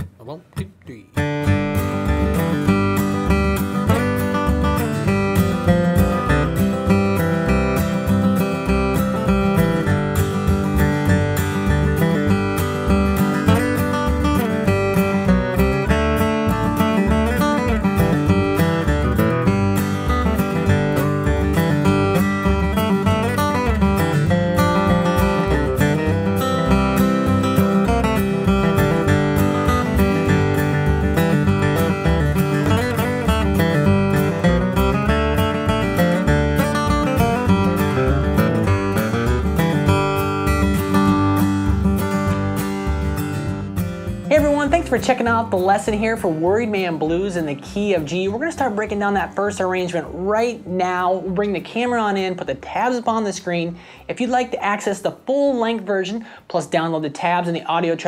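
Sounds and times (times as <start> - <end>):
acoustic guitar flatpicking: 0.0 - 58.0.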